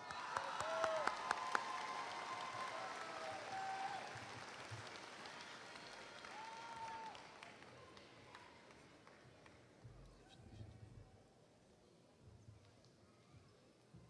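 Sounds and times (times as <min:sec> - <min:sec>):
audience applauding: 0:00.0 - 0:09.2.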